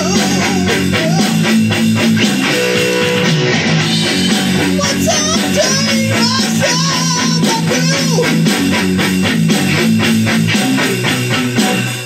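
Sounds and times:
band backing rhythm: 0.0s - 12.0s
electric guitar rock playing: 0.0s - 12.0s.

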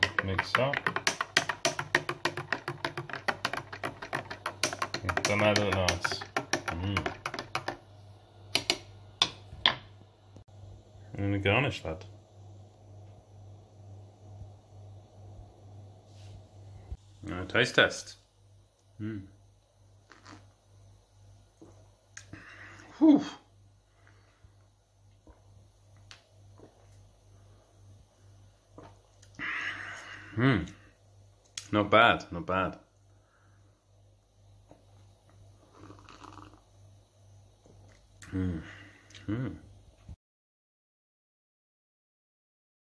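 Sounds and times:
low steady hum: 0.0s - 40.2s.

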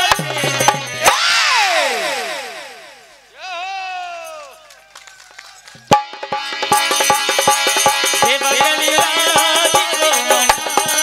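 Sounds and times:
music over sound system: 5.9s - 11.0s.

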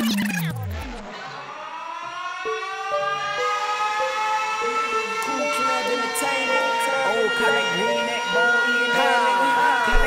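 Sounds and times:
siren-like rising tone: 0.0s - 10.0s.

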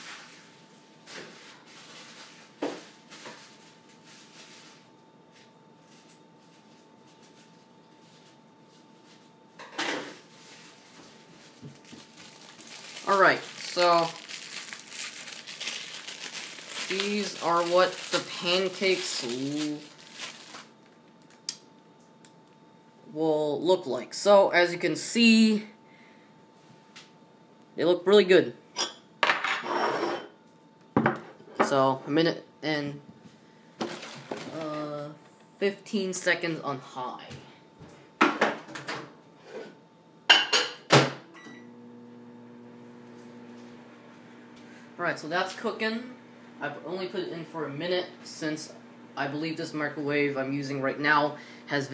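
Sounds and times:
microwave oven humming: 0.0s - 51.9s
plastic wrapping crinkling: 1.4s - 4.9s, 10.3s - 21.6s, 33.8s - 34.8s
scraping on a plate: 29.6s - 30.3s.

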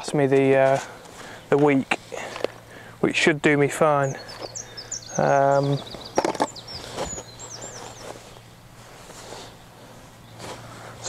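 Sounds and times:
birds chirping: 0.0s - 11.0s
fishing tackle clicks and knocks: 6.2s - 6.6s.

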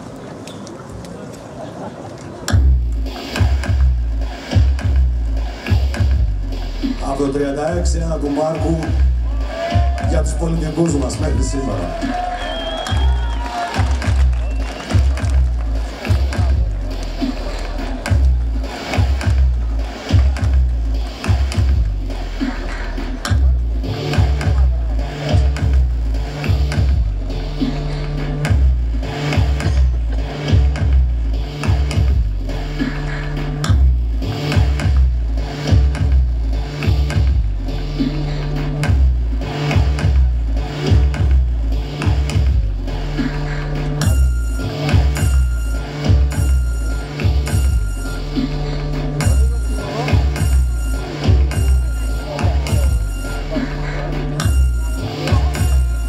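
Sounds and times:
pulsing bass beat: 2.5s - 56.0s
live band playing: 13.3s - 56.0s
low repeating riff: 14.0s - 56.0s.

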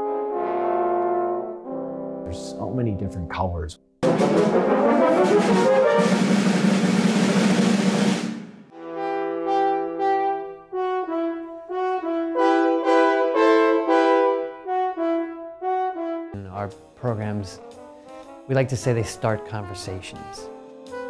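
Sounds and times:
french horns playing chords: 0.0s - 3.3s, 4.0s - 21.0s
drum kit and cymbals: 4.0s - 8.7s.

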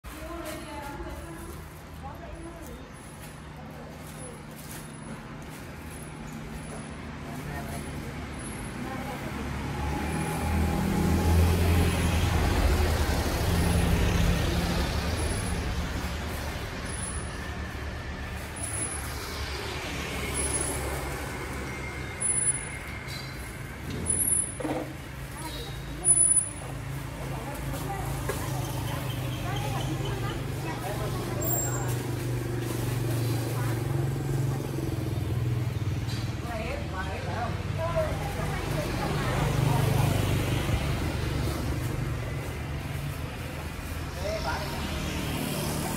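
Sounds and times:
road traffic passing: 0.0s - 45.9s.

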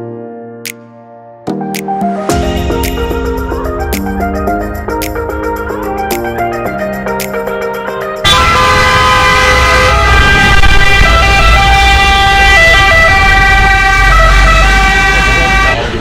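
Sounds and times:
engines rumbling: 2.4s - 16.0s.

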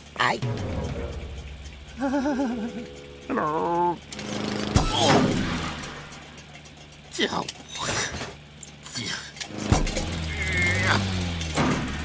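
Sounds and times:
cartoon voice trembling hum: 2.0s - 4.0s, 10.2s - 11.2s
sharp thunk: 4.8s - 5.6s.

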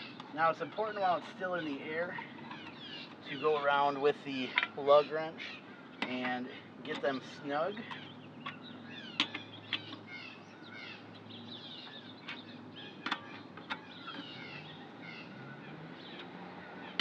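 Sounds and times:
small birds chirping: 0.0s - 17.0s
lug wrench metallic clicks: 7.8s - 10.1s.

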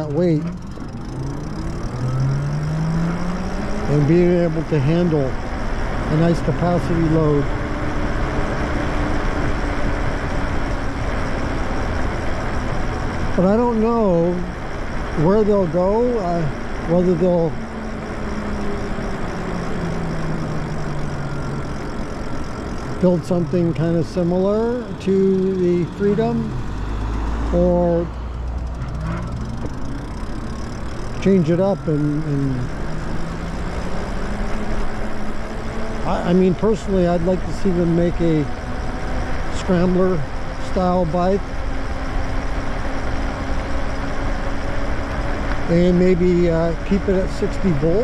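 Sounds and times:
electric bike road noise: 0.0s - 48.0s.

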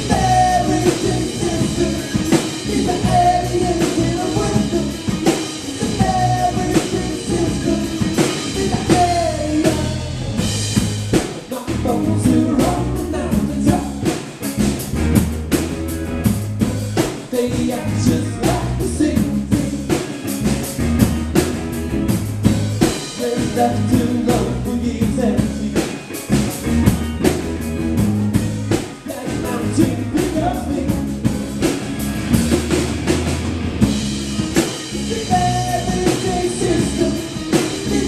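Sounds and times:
person singing: 0.0s - 10.4s, 11.5s - 14.1s, 17.3s - 20.2s, 23.0s - 26.1s, 28.0s - 31.3s, 34.6s - 38.0s
drum kit beat: 0.0s - 38.0s
rock band playing: 0.0s - 38.0s.

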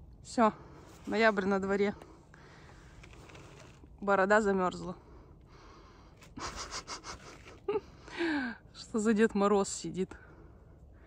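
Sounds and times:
person laughing breathily: 6.3s - 8.5s.

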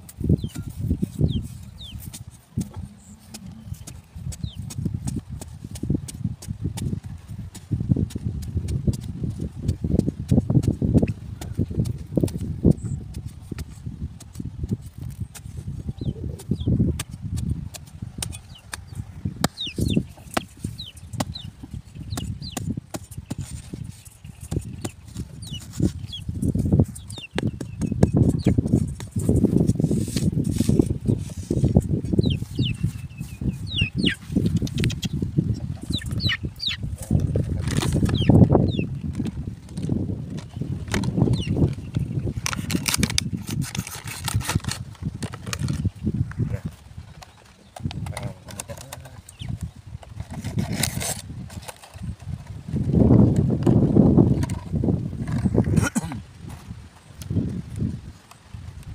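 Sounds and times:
machete chopping into dry soil: 16.4s - 26.7s.

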